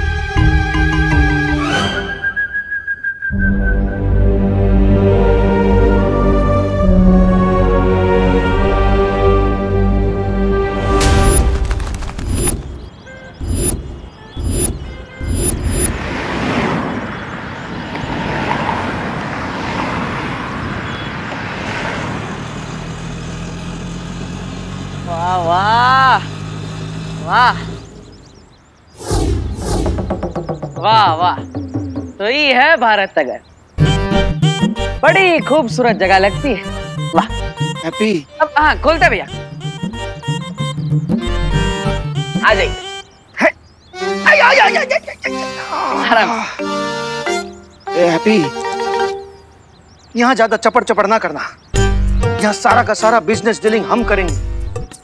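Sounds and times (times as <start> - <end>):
city street traffic: 0.0 - 55.0.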